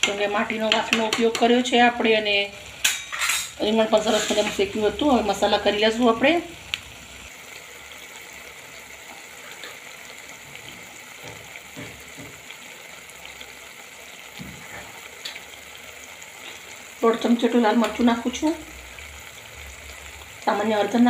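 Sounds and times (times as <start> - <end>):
food sizzling in oil: 0.0 - 21.0.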